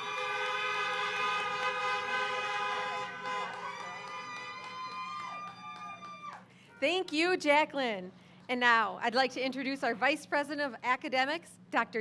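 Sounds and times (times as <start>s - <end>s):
car horns honking: 0.0s - 3.6s.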